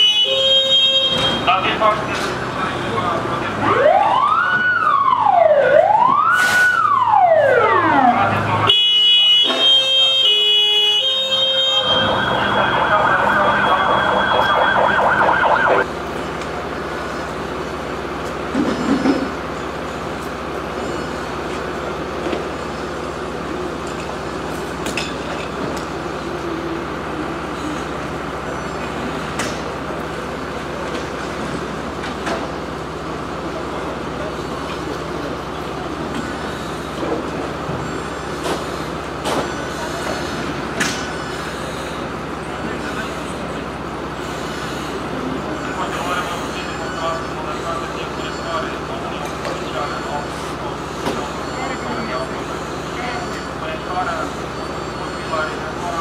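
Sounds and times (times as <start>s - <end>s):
fire engine siren: 0.0s - 15.9s, 32.4s - 56.0s
truck engine running: 11.3s - 45.7s.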